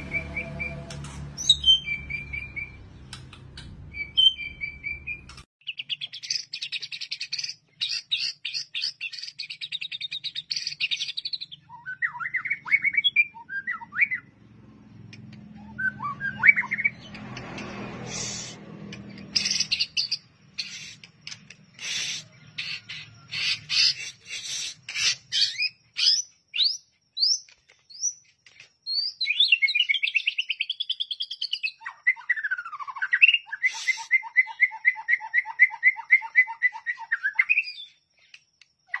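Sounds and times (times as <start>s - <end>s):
bird singing varied song: 0.0s - 39.0s.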